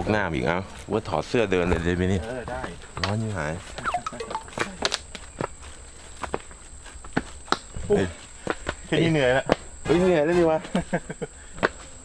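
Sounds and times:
footsteps on dirt and leaves: 1.7s - 7.8s.

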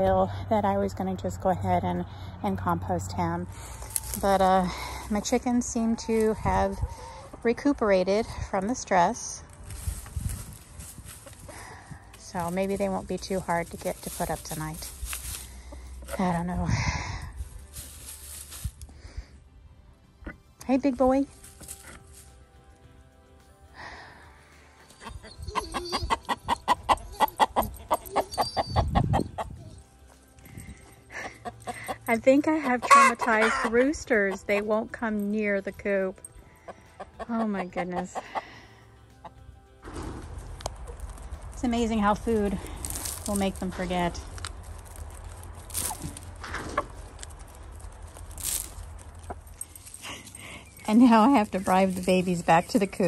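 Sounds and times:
chickens pecking and rustling hay: 3.3s - 7.8s, 8.5s - 19.1s, 21.3s - 22.4s, 39.3s - 53.0s
chicken clucking: 32.6s - 33.8s.

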